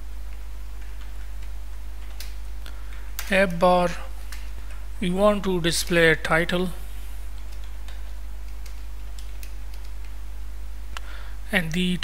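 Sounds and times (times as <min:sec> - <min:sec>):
steady low hum: 0:00.0 - 0:12.0
computer keyboard keystroke clicks: 0:00.8 - 0:03.3, 0:07.4 - 0:10.2.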